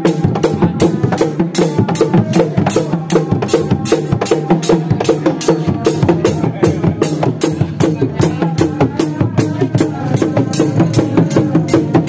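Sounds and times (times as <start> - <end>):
hand drums in fast rhythm: 0.0 - 12.0.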